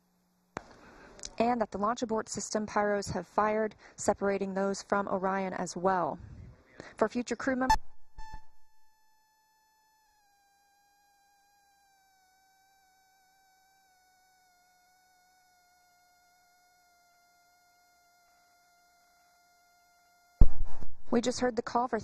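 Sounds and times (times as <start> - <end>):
faint thin whine: 0.0 - 5.3, 6.1 - 22.0.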